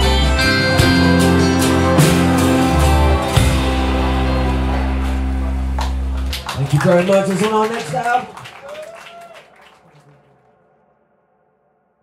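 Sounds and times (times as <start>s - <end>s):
acoustic guitar: 0.0s - 6.2s
bass guitar: 0.0s - 7.0s.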